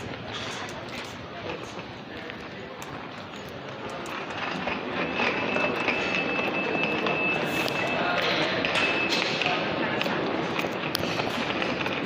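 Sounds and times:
luggage trolley rolling: 0.0 - 12.0.

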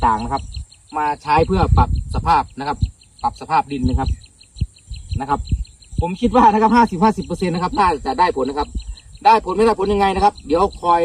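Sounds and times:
rapid even chirping: 0.0 - 11.0
low thumps: 1.4 - 3.0, 3.8 - 8.0.

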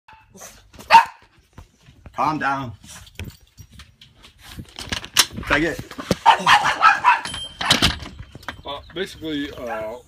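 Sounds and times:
small dog barking: 0.1 - 1.2, 6.2 - 7.3.

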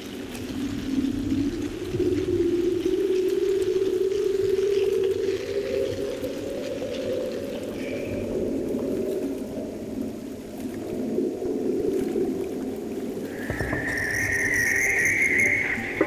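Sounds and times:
low rumbling drone: 11.2 - 16.0
high steady whistling tone: 13.2 - 16.0.

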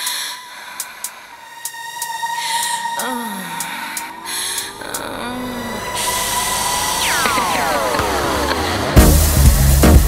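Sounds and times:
falling pitch sweeps: 3.7 - 9.1
high synth tones: 4.1 - 9.2.

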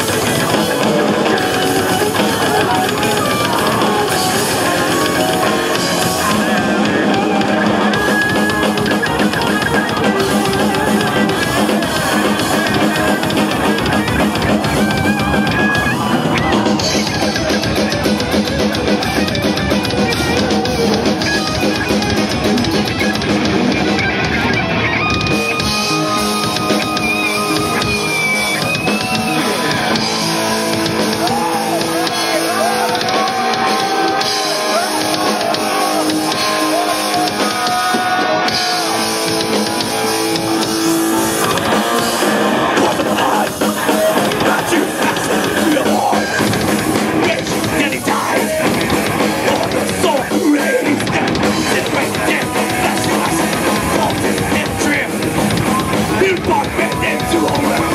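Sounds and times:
bending electric guitar lead: 0.0 - 57.9
heavy metal band playing: 0.0 - 57.9.

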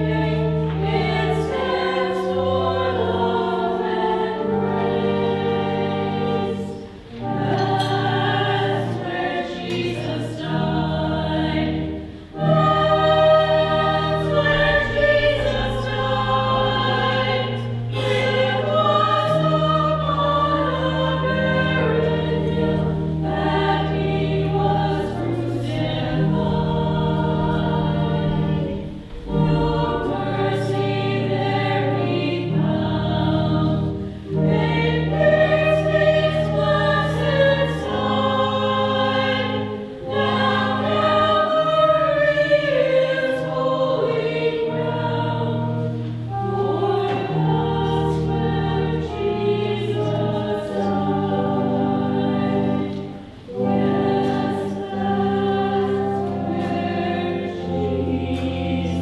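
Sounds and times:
group singing a hymn: 0.0 - 59.0
long-held low accompanying notes: 0.0 - 59.0.

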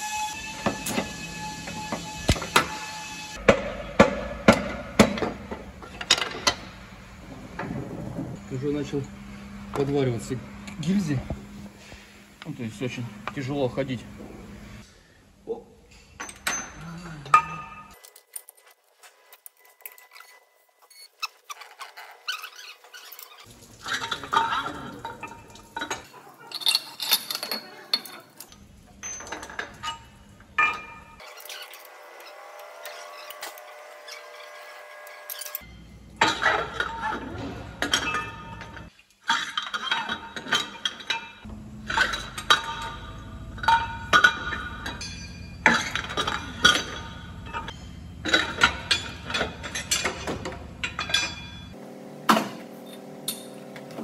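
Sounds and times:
metallic clinks and knocks: 25.2 - 31.6, 37.8 - 51.8.

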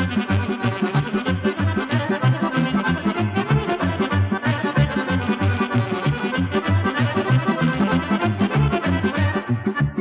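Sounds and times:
accordion-led folk band playing: 0.0 - 10.0.

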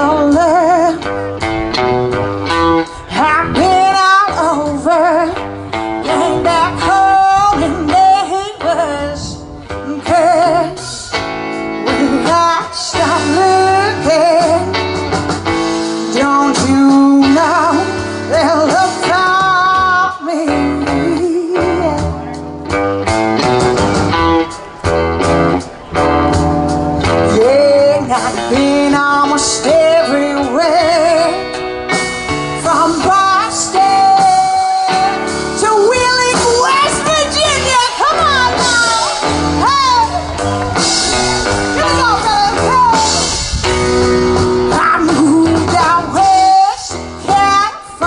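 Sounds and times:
woman singing: 0.0 - 1.1, 2.9 - 11.2, 11.8 - 15.0, 15.8 - 22.2, 27.0 - 31.6, 32.5 - 40.3, 41.8 - 43.4, 44.7 - 48.0
drum kit: 0.0 - 48.0
electric guitars: 0.0 - 48.0.

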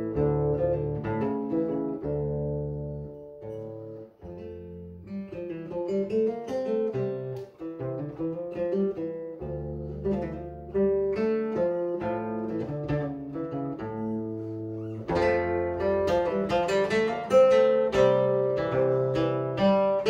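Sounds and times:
fingerpicked classical guitar: 0.0 - 20.0.

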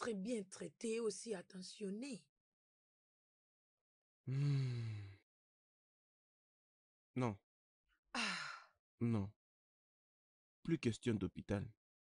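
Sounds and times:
long breathy sigh: 4.3 - 5.2.

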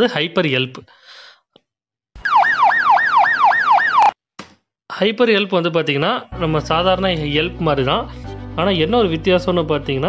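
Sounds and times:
ambulance siren fast yelp: 2.2 - 4.2.

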